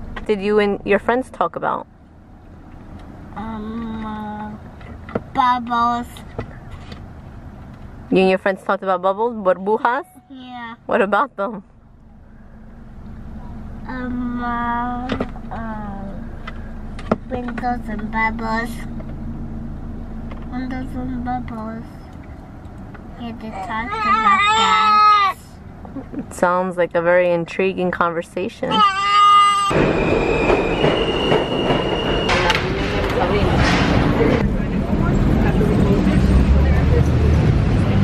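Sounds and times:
car rumble from inside cabin: 0.0 - 9.5, 10.3 - 29.8
subway cars rumbling: 23.8 - 38.0
train wheels squealing on rails: 29.7 - 33.3.

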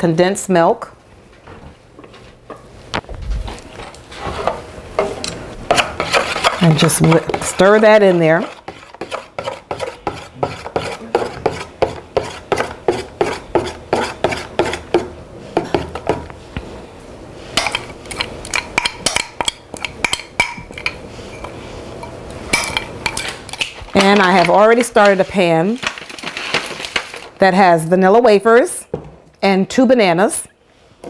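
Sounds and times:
utensil stirring in metal bowl: 3.8 - 16.3, 17.5 - 27.2.

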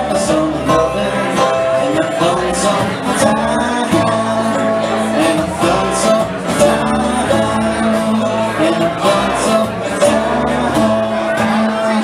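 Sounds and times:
bluegrass band playing: 0.0 - 12.0
man singing: 0.0 - 12.0.

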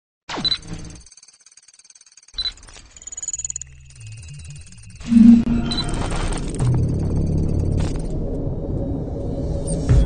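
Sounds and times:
stuttering digital chatter: 0.4 - 7.6
thin high whine: 4.0 - 6.2
low hum: 4.6 - 9.9.

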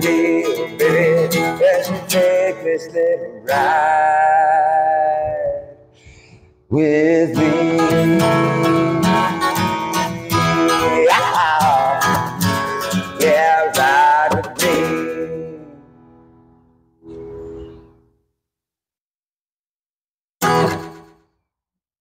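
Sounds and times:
guitar strum: 0.0 - 5.4, 7.2 - 18.0, 20.4 - 21.3
acoustic guitar picked: 0.0 - 18.2, 20.4 - 21.3.

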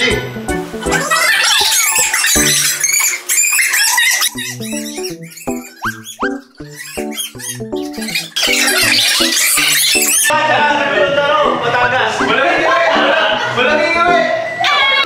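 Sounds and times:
bouncy staccato background music: 0.0 - 2.8, 4.3 - 14.3.

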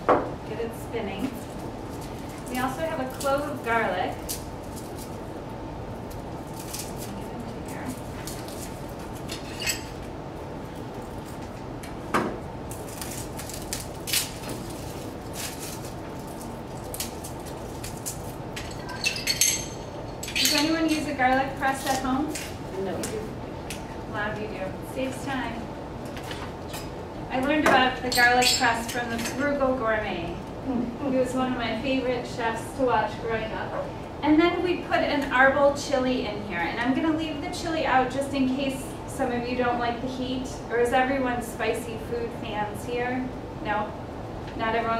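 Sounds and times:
faint hum: 0.0 - 44.9
utensils and dishes clinking: 9.2 - 10.0, 18.5 - 21.2, 27.7 - 29.5.

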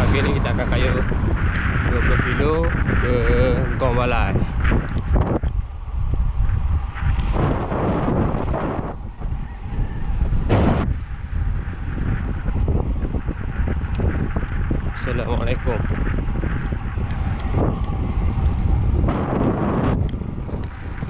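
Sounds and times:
road noise: 0.0 - 21.0
wind buffeting microphone: 0.0 - 21.0.

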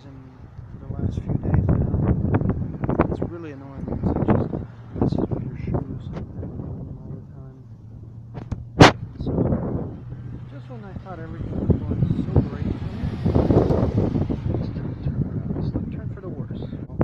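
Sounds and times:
vehicle passing: 0.0 - 17.0.

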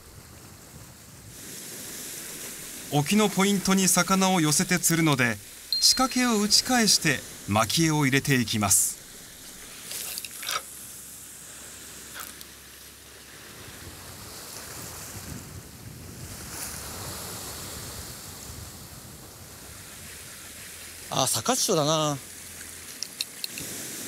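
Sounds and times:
surf washing against rocks: 0.0 - 24.0
wind on microphone: 13.4 - 21.0.

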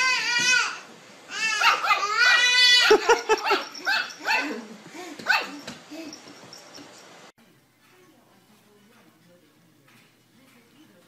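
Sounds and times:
baby laughing: 1.3 - 6.2.

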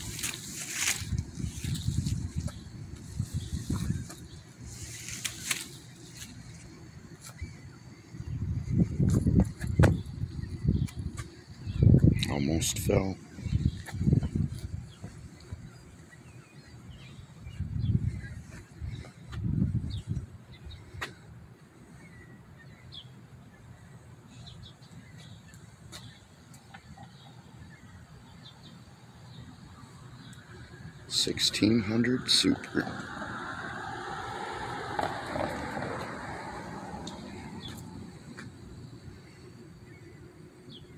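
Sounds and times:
road traffic rush: 0.0 - 40.9.

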